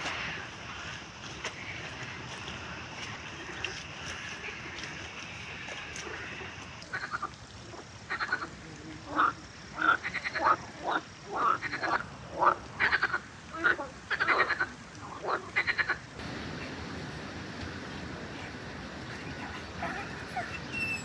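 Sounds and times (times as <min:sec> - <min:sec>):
frogs croaking: 0:00.0 - 0:21.0.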